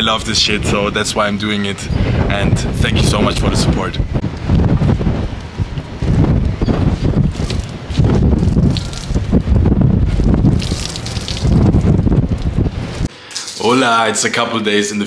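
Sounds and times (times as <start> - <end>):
wind buffeting microphone: 0.0 - 13.1
water splashing and dripping: 7.0 - 13.8.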